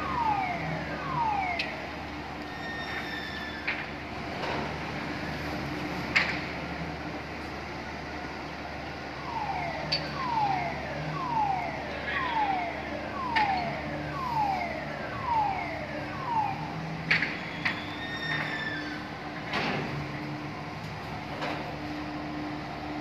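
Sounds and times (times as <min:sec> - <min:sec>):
crane warning alarm falling tone: 0:00.0 - 0:05.9, 0:09.0 - 0:23.0
machinery hum: 0:00.0 - 0:23.0.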